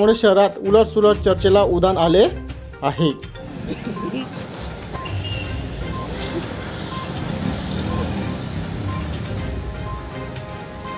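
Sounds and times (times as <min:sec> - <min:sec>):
street traffic: 0:01.0 - 0:10.9.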